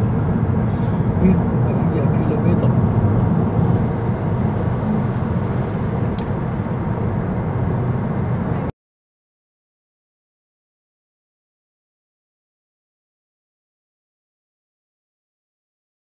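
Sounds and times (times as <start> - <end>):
car cabin road and engine rumble: 0.0 - 8.7.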